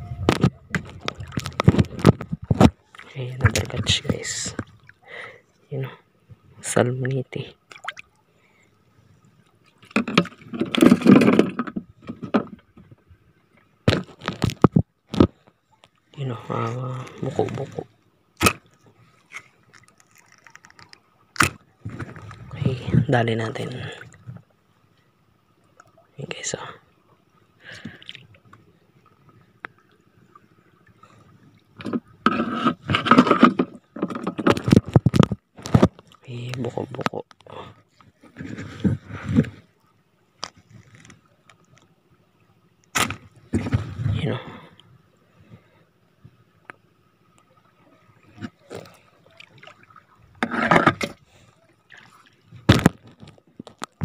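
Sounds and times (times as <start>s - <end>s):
seawater splashing and sloshing: 7.6s - 11.5s, 47.4s - 53.6s
water drips: 7.7s - 8.2s.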